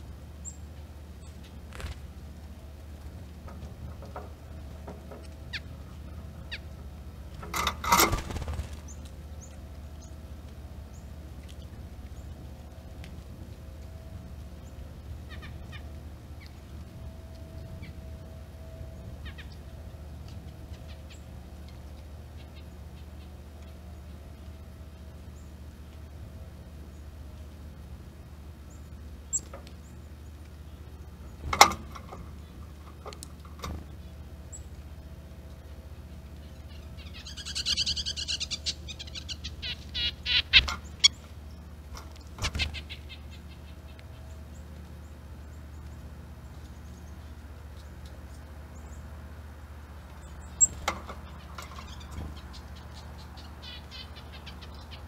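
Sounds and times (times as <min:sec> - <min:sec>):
low background rumble: 0:00.0 - 0:55.0
small birds calling: 0:00.0 - 0:55.0
steady low hum: 0:00.0 - 0:55.0.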